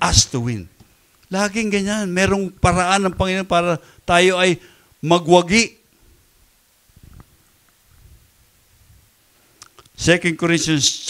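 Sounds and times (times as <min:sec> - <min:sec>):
microphone handling rumble: 0:06.9 - 0:09.2.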